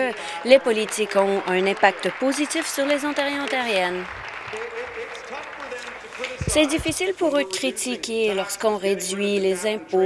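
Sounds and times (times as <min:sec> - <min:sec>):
many people clapping: 0:00.0 - 0:07.4.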